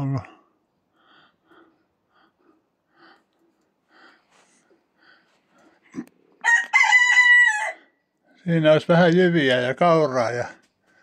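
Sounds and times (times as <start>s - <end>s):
rooster crowing: 6.4s - 8.0s.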